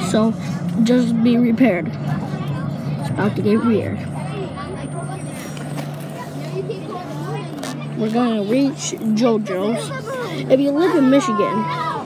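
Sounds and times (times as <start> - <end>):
bus engine droning: 0.0 - 12.0
passengers talking: 0.0 - 12.0.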